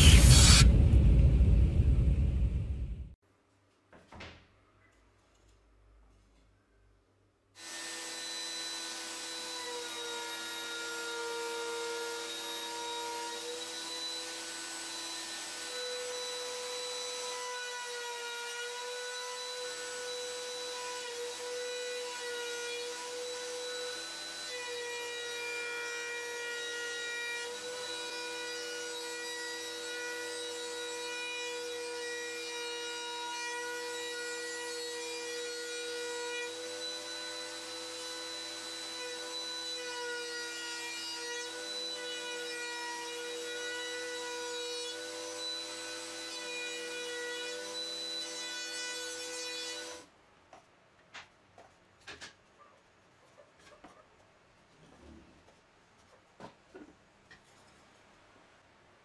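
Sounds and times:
router cutting plywood: 7.6s - 50.0s.

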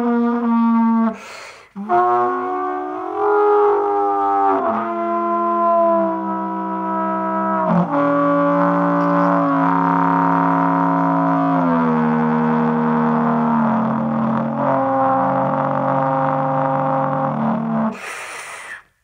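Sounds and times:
wind instrument drone: 1.8s - 18.0s.

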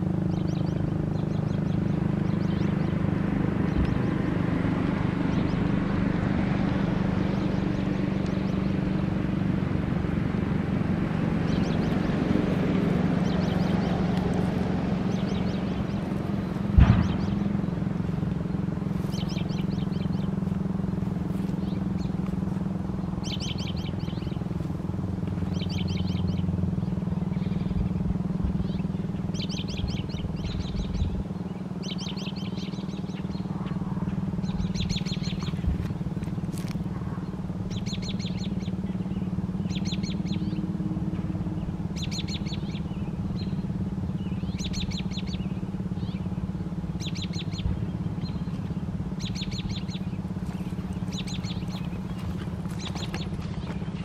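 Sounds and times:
songbird trilled chirps: 0.0s - 5.8s, 6.8s - 9.0s, 11.4s - 24.7s, 25.3s - 36.8s, 37.6s - 40.8s, 41.4s - 54.0s
low mechanical hum: 0.0s - 54.0s.

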